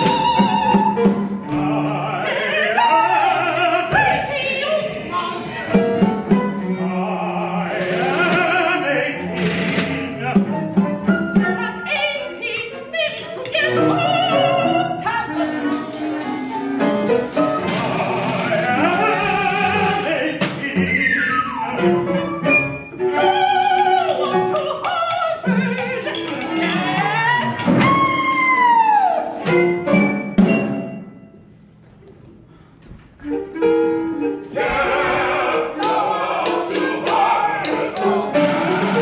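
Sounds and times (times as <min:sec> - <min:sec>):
operatic singing: 0:00.0 - 0:29.8, 0:34.2 - 0:39.0
chamber ensemble playing: 0:33.2 - 0:39.0.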